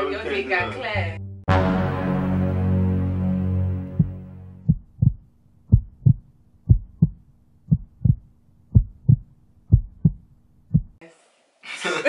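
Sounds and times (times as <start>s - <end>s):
music: 0.0s - 4.8s
heartbeat thumps: 3.9s - 11.0s.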